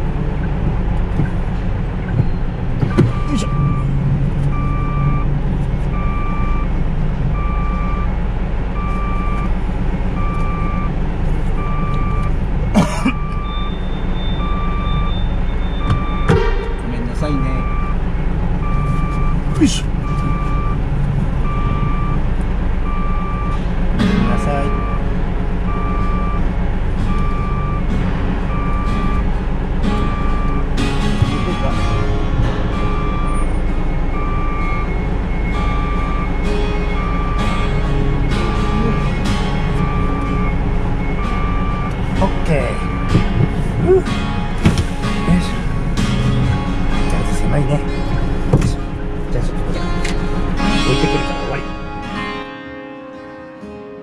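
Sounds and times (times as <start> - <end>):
diesel truck engine rumble: 0.0 - 52.5
reversing alarm beeping: 2.0 - 8.2, 8.8 - 11.0, 11.6 - 52.3
sharp knocks: 2.1 - 3.3, 15.8 - 16.9.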